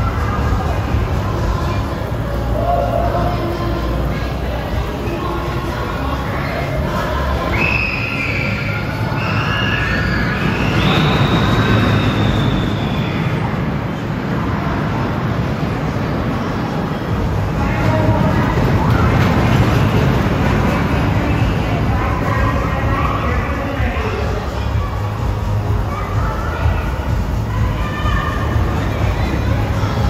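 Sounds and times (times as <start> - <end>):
high squeals: 5.0 - 13.8
roller coaster rumbling on track: 8.6 - 30.0.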